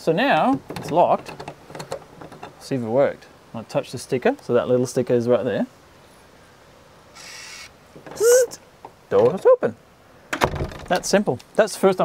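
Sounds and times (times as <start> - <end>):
smart lock motor whirring: 7.2 - 7.7.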